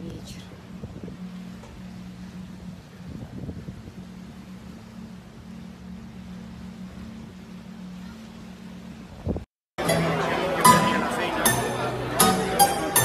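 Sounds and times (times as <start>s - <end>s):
hiss of wind and sea: 0.0s - 9.5s
low hum of ship engines: 0.0s - 13.0s.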